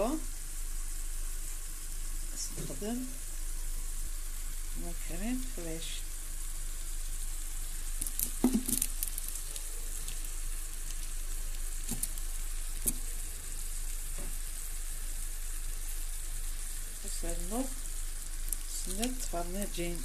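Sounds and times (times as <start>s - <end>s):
greens sizzling in a frying pan: 0.0s - 20.0s.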